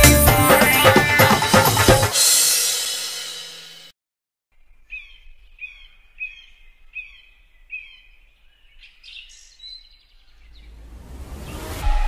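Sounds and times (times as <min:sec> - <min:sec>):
bird chirping: 0:04.6 - 0:10.9.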